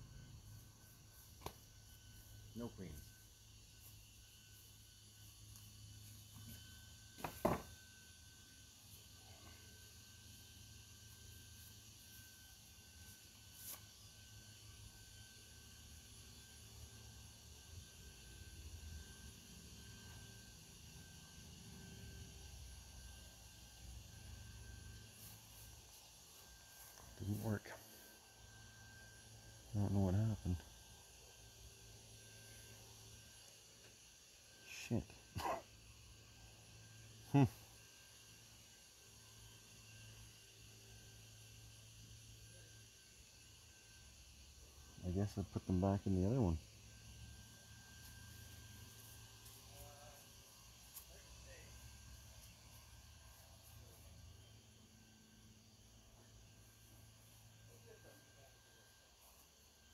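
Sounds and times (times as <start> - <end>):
sharp knock of wood: 7.2 - 7.7.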